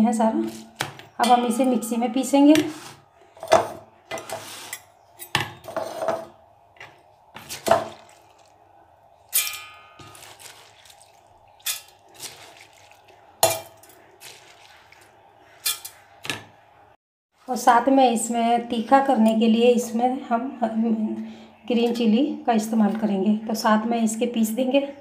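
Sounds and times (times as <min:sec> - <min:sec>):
steel spoon clinking and scraping: 0:01.3 - 0:06.3, 0:09.3 - 0:12.6, 0:13.4 - 0:16.0.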